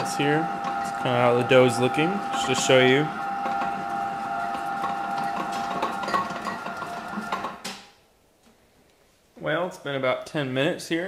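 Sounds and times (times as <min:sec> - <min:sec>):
machine knocking and rattling: 0:00.0 - 0:01.0, 0:02.2 - 0:07.8
stand mixer motor whine: 0:00.0 - 0:07.8.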